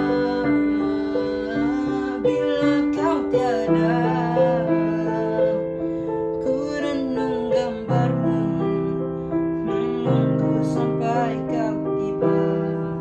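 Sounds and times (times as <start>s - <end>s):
boy singing: 0.0s - 13.0s
digital piano chords: 0.0s - 13.0s.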